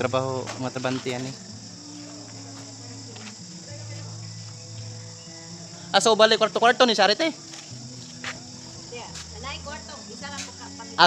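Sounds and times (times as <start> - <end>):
night insects chirring: 0.0 - 11.0.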